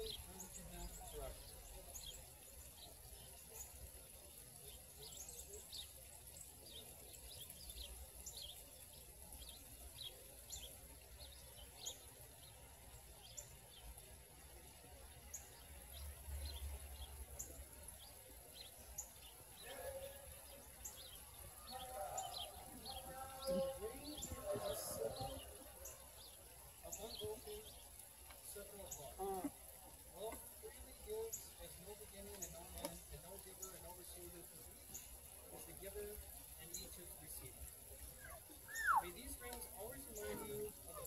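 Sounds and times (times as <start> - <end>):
small birds chirping: 0.0 - 41.0.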